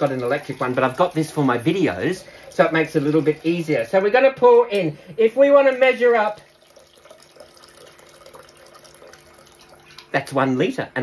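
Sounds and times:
water pouring into saucepan: 0:00.0 - 0:04.2, 0:05.4 - 0:10.4.

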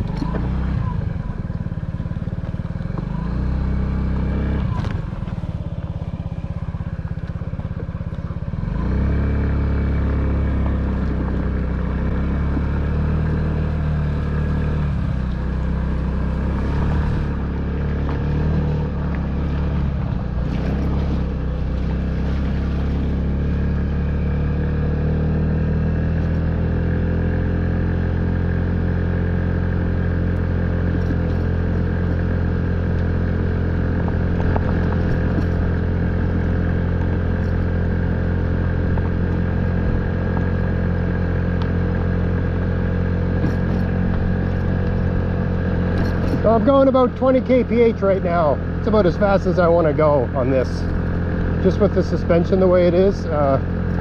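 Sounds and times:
scooter engine running: 0:00.0 - 0:54.0.

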